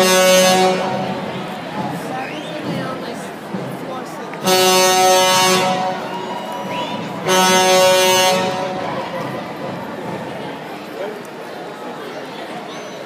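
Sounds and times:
air horn blasts: 0.0 - 1.5, 4.4 - 9.2
street crowd chatter: 0.0 - 13.0.

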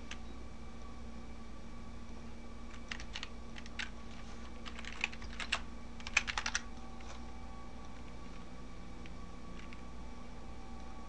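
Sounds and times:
low steady hum: 0.0 - 11.0
keyboard keystrokes: 2.7 - 4.0, 4.6 - 6.7.

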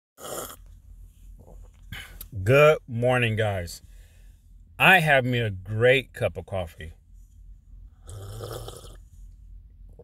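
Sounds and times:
person slurping coffee: 0.2 - 0.6, 8.0 - 9.0.

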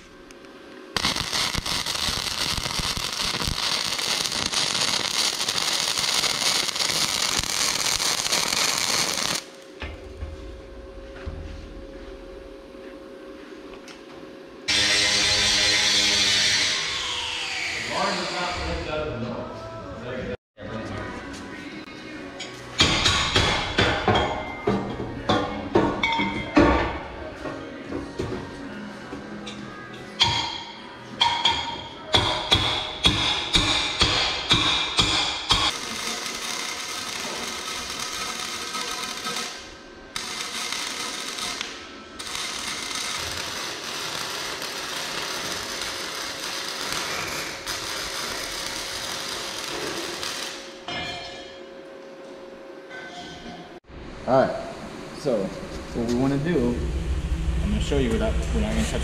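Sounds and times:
welding arc sizzling: 0.9 - 9.8, 14.7 - 18.6, 32.2 - 50.9.

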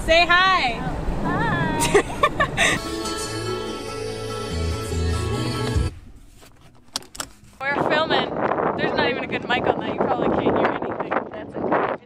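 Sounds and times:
background music with chords: 2.8 - 6.0
wind buffeting microphone: 7.6 - 12.0.

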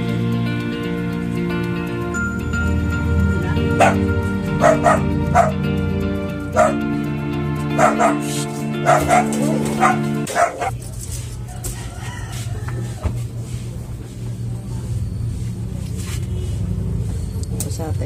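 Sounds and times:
soft music with held chords: 0.0 - 10.6
dog barking: 3.8 - 5.6, 6.5 - 7.0, 7.7 - 10.8.

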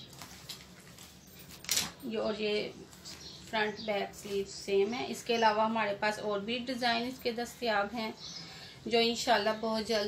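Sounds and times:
cloth rustling: 0.0 - 2.3.

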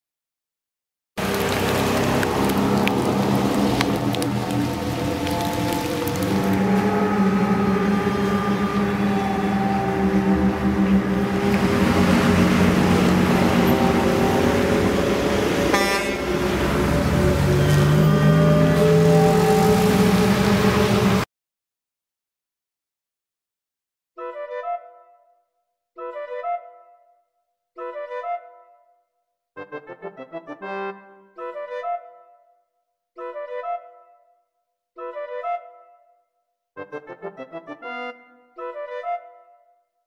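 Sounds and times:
engine and road noise: 1.2 - 21.3
vehicle horns honking: 3.1 - 21.2.

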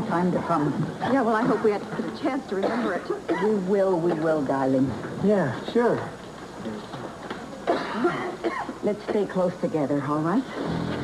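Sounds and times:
person coughing: 2.6 - 3.6, 7.7 - 9.2.

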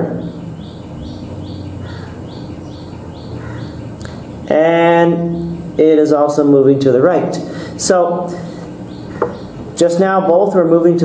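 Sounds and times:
bird chirping: 0.0 - 6.5, 7.4 - 10.4
steady low hum: 0.0 - 11.0.

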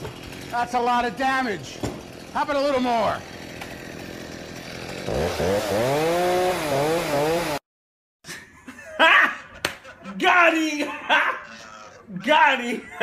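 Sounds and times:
chainsaw engine revving: 0.0 - 7.6.

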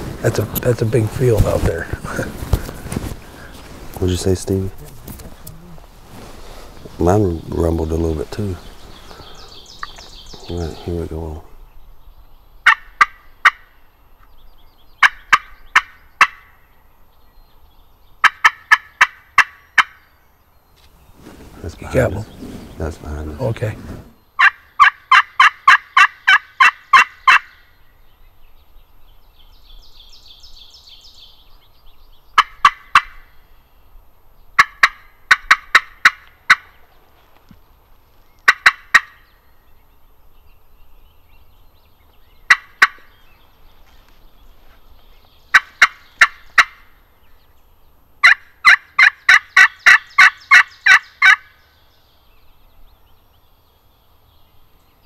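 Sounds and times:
turkey call yelps: 24.4 - 27.6, 34.6 - 36.7, 48.2 - 51.6.

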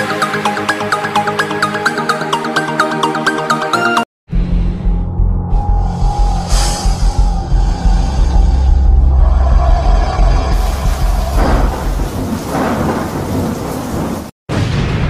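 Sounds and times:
music: 0.0 - 13.1
deep continuous rumble: 4.3 - 14.2
rushing swells: 5.5 - 14.3.

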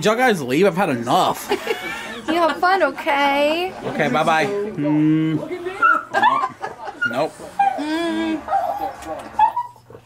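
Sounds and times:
small dog whining: 7.0 - 10.0.

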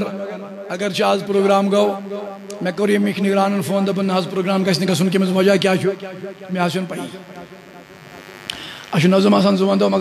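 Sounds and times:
man speaking through amplifier: 0.0 - 7.6, 8.9 - 10.0
electrical buzz from sound system: 0.0 - 10.0.

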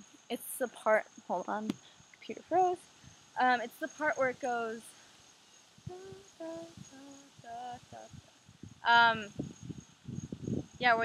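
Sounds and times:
person softly singing: 5.9 - 8.2.

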